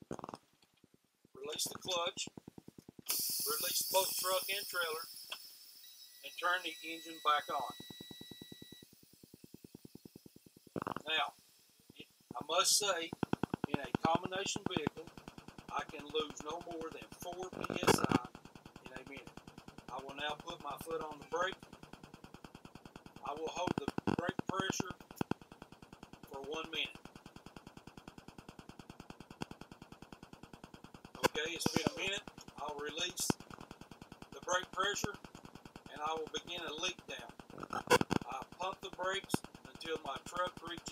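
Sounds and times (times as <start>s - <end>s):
faint rapid pulsing: 1.3s - 40.9s
faint high steady tone: 3.1s - 15.1s, 31.2s - 33.4s
sharp click: 12.4s - 40.9s.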